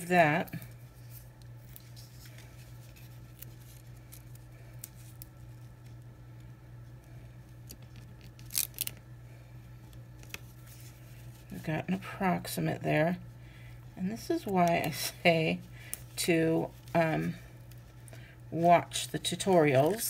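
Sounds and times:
steady low hum: 0.0s - 20.0s
crisp paper rustle: 0.4s - 6.0s, 7.6s - 9.0s, 10.2s - 11.6s.

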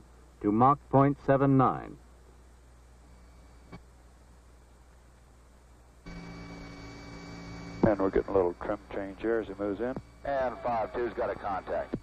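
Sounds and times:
electrical mains hum: 0.0s - 12.0s
man speaking over intercom: 7.8s - 12.0s.

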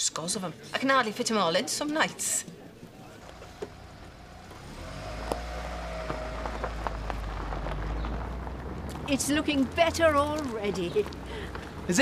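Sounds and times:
vehicle engine rumbling: 2.8s - 12.0s.

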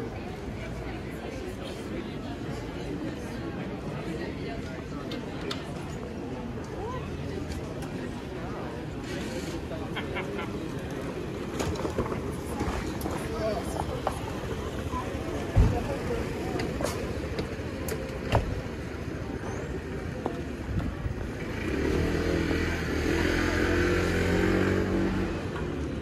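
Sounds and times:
street voices: 0.0s - 26.0s.

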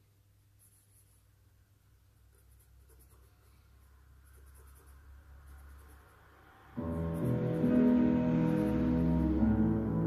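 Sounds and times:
charcoal scratching on paper: 0.6s - 1.4s, 2.2s - 6.3s.

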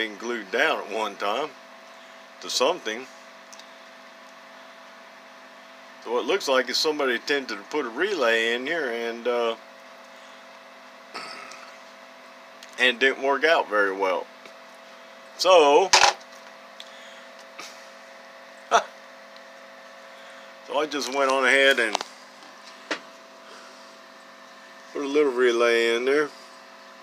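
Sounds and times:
faint steady hum: 0.0s - 27.0s.

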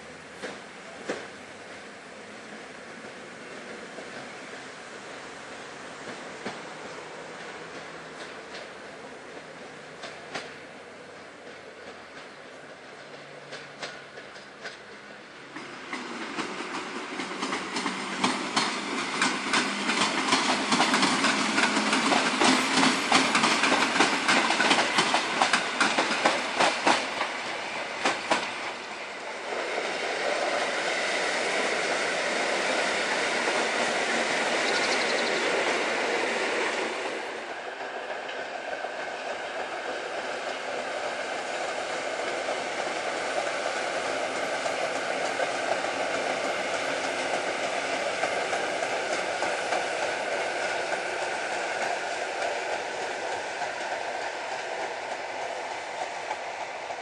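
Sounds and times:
train wheels clacking over rail joints: 0.3s - 1.7s, 6.0s - 57.0s.

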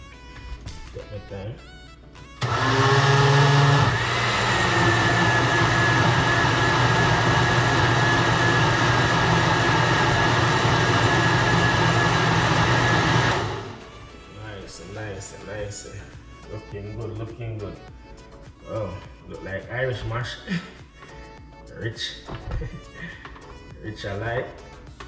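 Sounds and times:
blender motor running: 2.4s - 13.9s.

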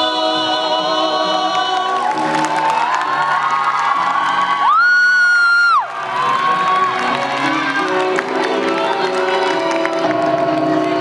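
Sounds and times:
singers holding long notes: 0.0s - 11.0s
audience cheering: 2.0s - 11.0s.

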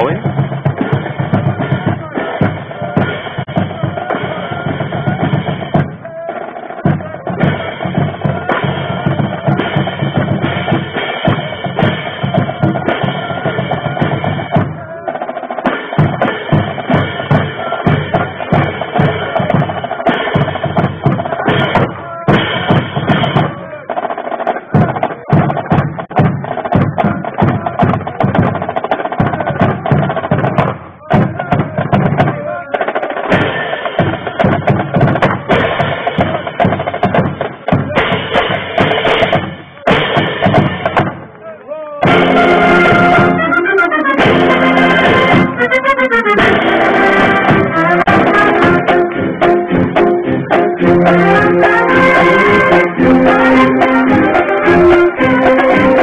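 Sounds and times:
marching band playing: 0.0s - 56.0s
marching drum cadence: 0.0s - 56.0s.

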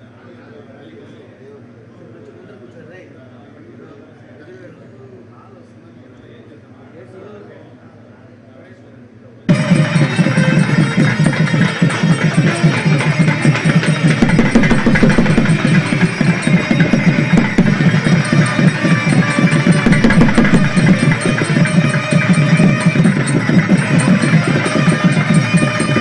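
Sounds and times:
ritual music with fast drumming: 9.5s - 26.0s.

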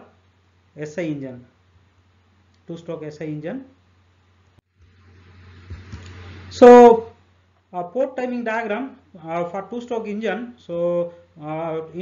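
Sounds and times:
faint hiss: 0.0s - 12.0s
steady low hum: 0.0s - 12.0s.

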